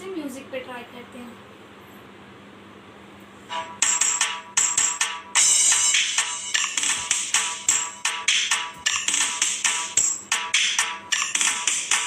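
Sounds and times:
dance music with percussive beat: 0:03.5 - 0:12.0.

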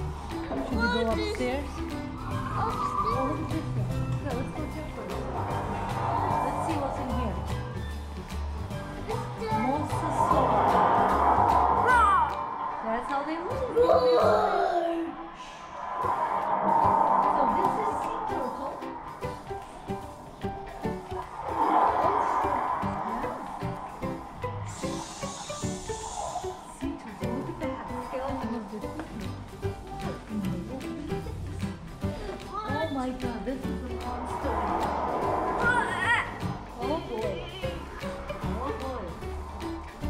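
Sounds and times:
indistinct voices: 0:00.0 - 0:40.0
music: 0:00.0 - 0:40.0.

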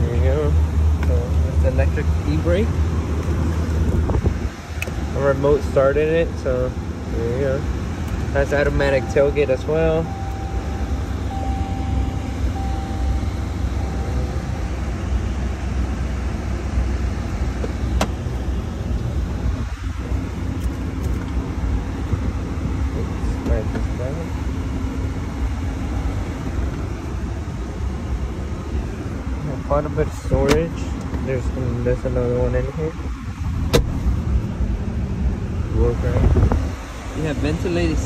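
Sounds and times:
low rumble in truck cab: 0:00.0 - 0:38.0.

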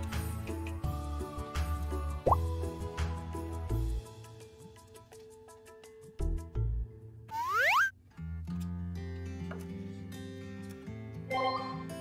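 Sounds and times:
background music: 0:00.0 - 0:07.8, 0:08.9 - 0:12.0
rising pop sound effect: 0:02.2 - 0:02.4, 0:07.3 - 0:07.9.

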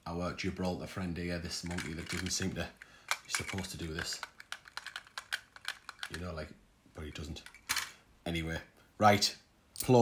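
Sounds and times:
plastic toy clicks and taps: 0:03.1 - 0:06.2.

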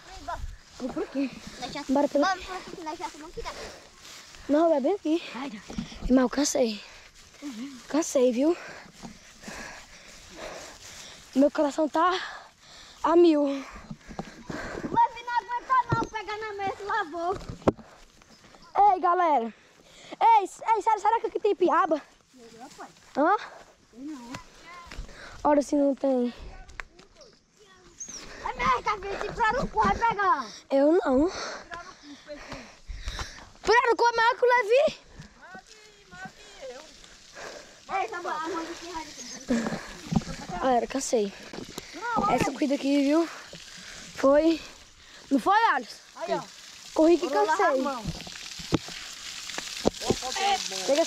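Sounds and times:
boy panting: 0:00.0 - 0:15.8, 0:28.1 - 0:33.6, 0:36.4 - 0:45.4.

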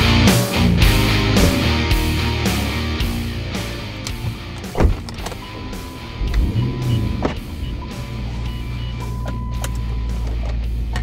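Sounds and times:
car engine starting and idling: 0:00.8 - 0:11.0.

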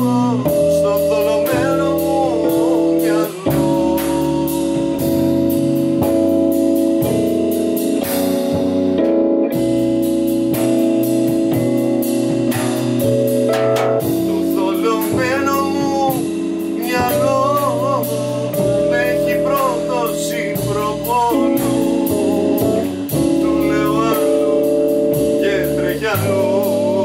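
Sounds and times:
person singing: 0:00.0 - 0:06.3, 0:14.0 - 0:27.0
drums with steady cymbal: 0:00.0 - 0:27.0
electric piano chords: 0:00.0 - 0:27.0
upright bass: 0:00.0 - 0:27.0.

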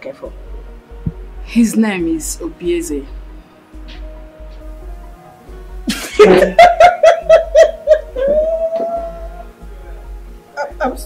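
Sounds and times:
woman laughing loudly: 0:05.9 - 0:09.2.

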